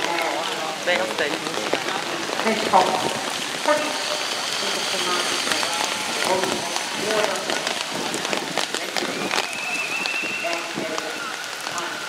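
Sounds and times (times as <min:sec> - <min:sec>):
raindrops ticking close by: 0:00.0 - 0:12.0
steady rain falling: 0:00.0 - 0:12.0.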